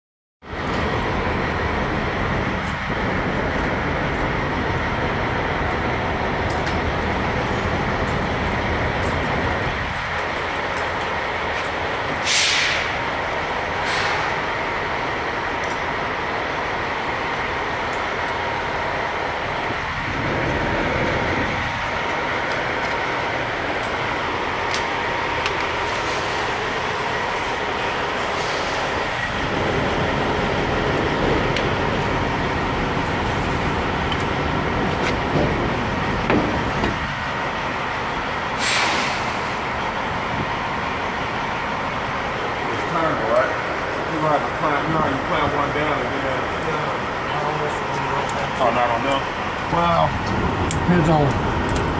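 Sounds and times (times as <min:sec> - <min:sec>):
diesel truck engines idling: 0:00.4 - 0:51.9
air hissing: 0:12.2 - 0:13.0, 0:13.8 - 0:14.5, 0:27.3 - 0:29.0, 0:38.6 - 0:39.6.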